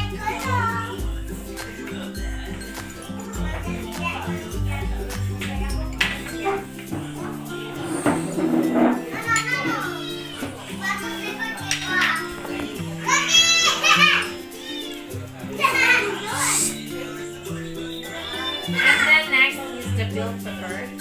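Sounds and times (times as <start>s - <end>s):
background music with held notes: 0.0s - 21.0s
high children's voices: 0.0s - 21.0s.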